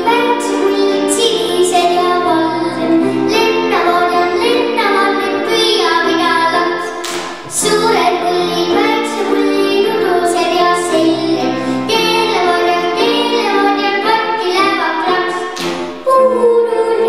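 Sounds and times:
girl singing into a microphone: 0.0 - 17.0
instrumental backing music: 0.0 - 17.0.

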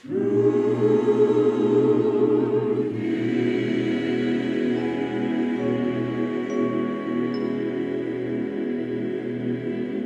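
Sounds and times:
choir and orchestra sustained chord: 0.0 - 10.0.

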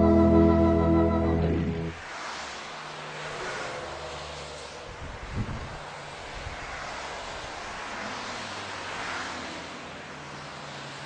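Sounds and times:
steady rushing noise: 0.0 - 9.1.

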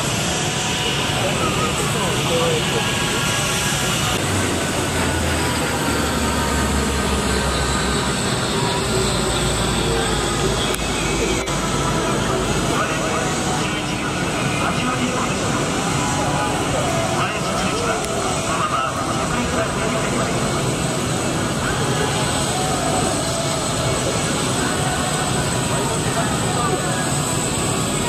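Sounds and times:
people talking: 0.0 - 28.0
propeller airplane flying by: 0.0 - 28.0.

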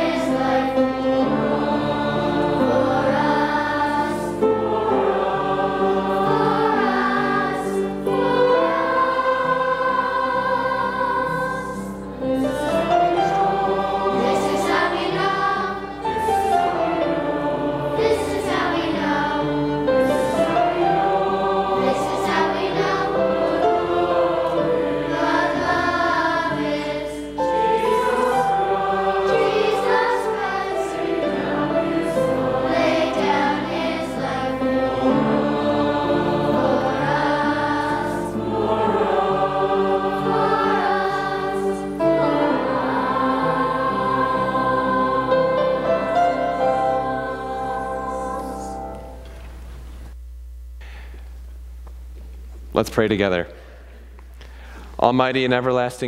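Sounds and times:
congregation singing a hymn: 0.0 - 49.6.

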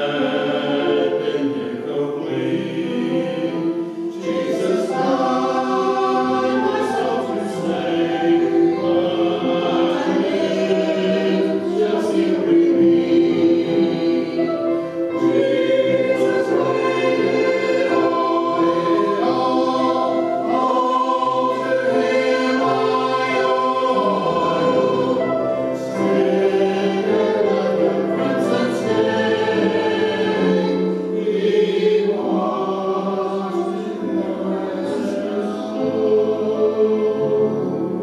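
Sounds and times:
choir singing: 0.0 - 38.0.

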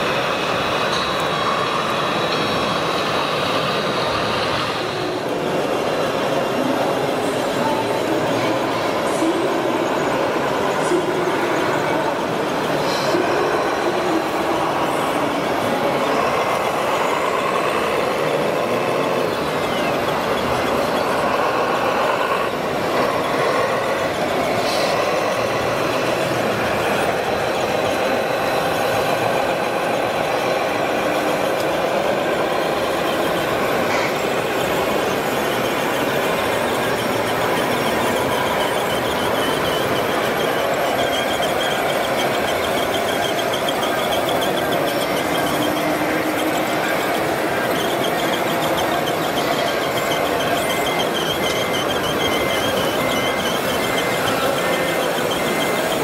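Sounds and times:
electric motors whining: 0.0 - 56.0.

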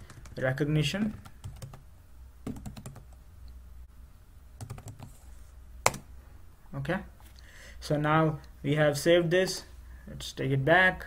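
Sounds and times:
keyboard typing: 1.1 - 1.8, 2.4 - 3.2, 4.6 - 5.2.

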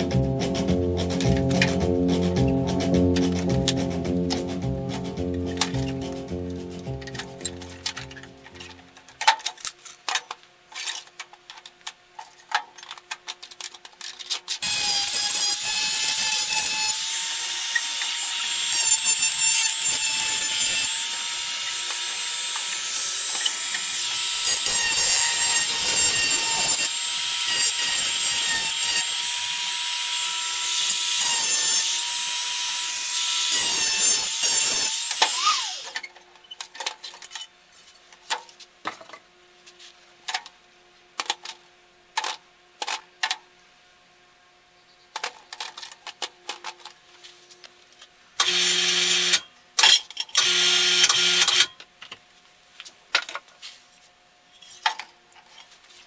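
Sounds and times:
rotary tool grinding metal: 14.0 - 36.6
small electric motor running: 14.6 - 36.0, 48.4 - 49.4, 50.4 - 51.7.

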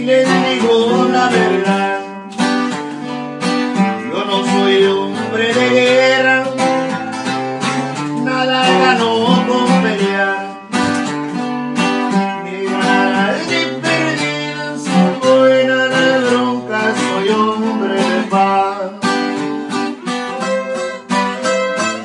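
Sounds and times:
acoustic guitars strumming: 0.0 - 22.0
picked guitar melody: 0.0 - 22.0.

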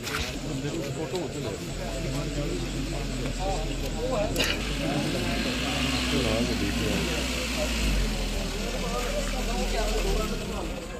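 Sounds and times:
people talking: 0.0 - 10.9
van engine idling: 1.2 - 10.9.

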